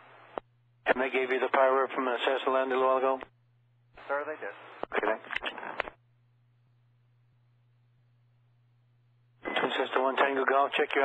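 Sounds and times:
faint low radio hum: 0:00.0 - 0:11.0
sharp radio clicks: 0:04.8 - 0:06.0.

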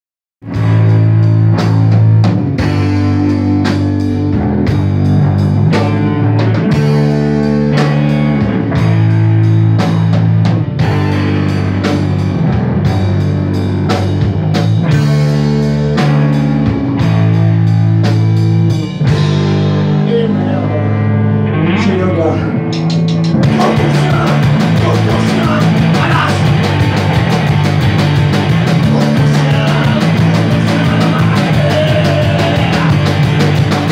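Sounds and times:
bass-heavy chords: 0:00.4 - 0:33.9
rock band playing: 0:00.4 - 0:33.9
drum hits: 0:22.6 - 0:33.9.

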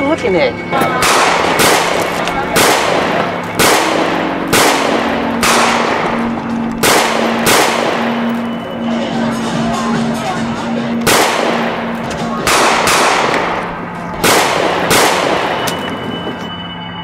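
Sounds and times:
low held music tone: 0:00.0 - 0:12.5
gunshots with ringing tail: 0:00.6 - 0:16.4.

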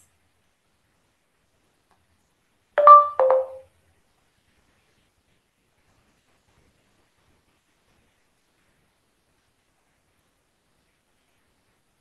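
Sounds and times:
two-note electronic chime: 0:02.8 - 0:03.6.

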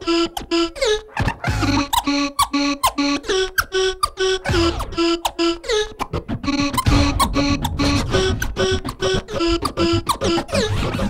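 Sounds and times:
choppy pitched stabs: 0:00.0 - 0:11.0
record scratching: 0:00.1 - 0:11.0.

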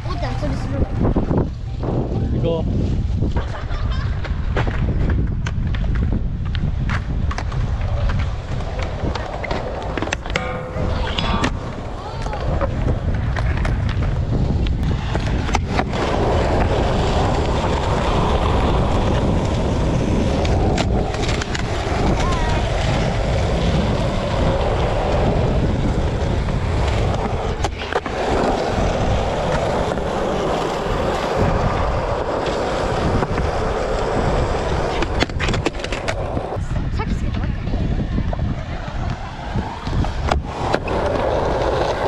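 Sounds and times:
skateboard wheels rolling on concrete: 0:00.0 - 0:42.0
skateboard clacks: 0:03.4 - 0:36.6, 0:37.5 - 0:42.0.

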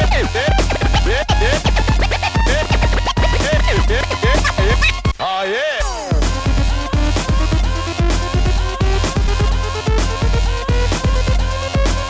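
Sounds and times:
record scratching on turntable: 0:00.0 - 0:06.3
electronic dance beat: 0:00.0 - 0:12.0.

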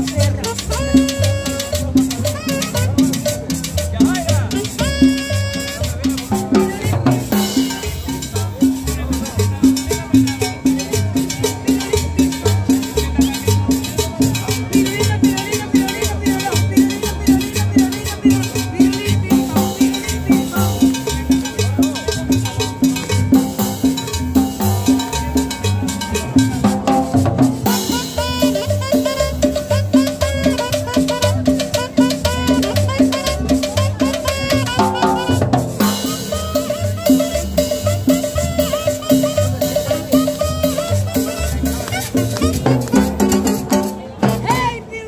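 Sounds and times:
upright bass plucking: 0:00.0 - 0:45.0.

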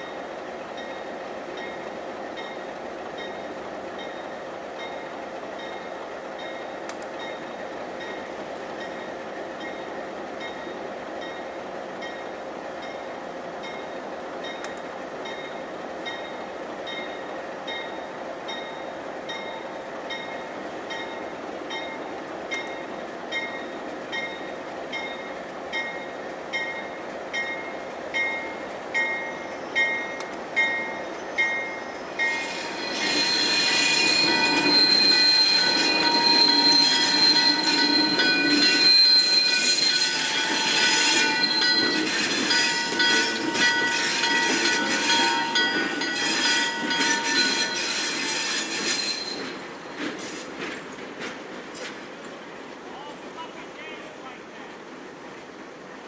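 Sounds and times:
diesel locomotives passing: 0:00.0 - 0:56.0
locomotive bell ringing: 0:00.8 - 0:49.6
wheels squealing: 0:32.1 - 0:49.6.

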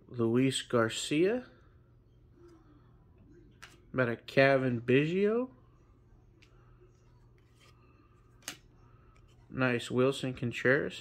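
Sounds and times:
handling trading cards: 0:06.4 - 0:09.5.

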